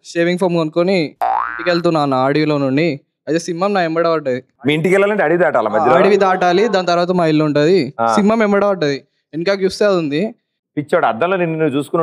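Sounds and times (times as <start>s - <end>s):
man talking: 0.0s - 12.0s
comic boing sound effect: 1.2s - 1.8s.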